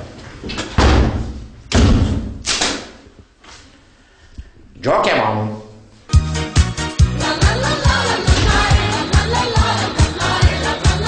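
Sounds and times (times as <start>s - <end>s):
loud thuds: 8.1s - 10.2s.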